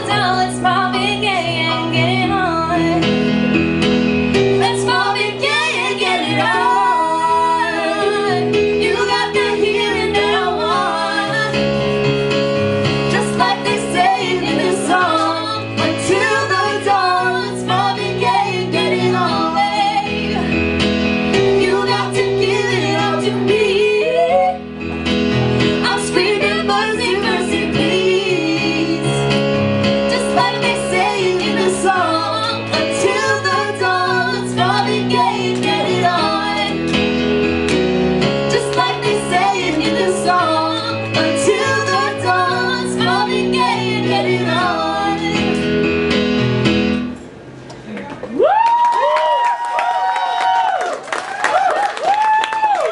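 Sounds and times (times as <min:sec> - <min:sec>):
electric keyboard chords: 0:00.0 - 0:48.0.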